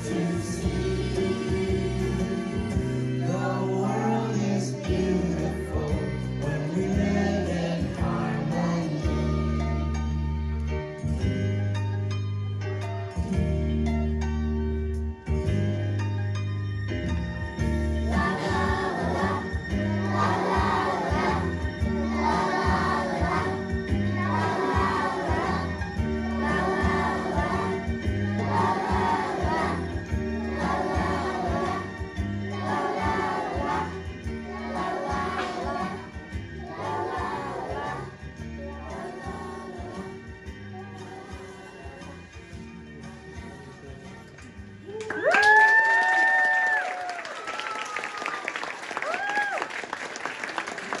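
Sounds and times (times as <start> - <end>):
children singing together: 0.0 - 9.6, 18.1 - 42.2
people whooping: 44.8 - 50.0
audience applauding: 44.9 - 51.0.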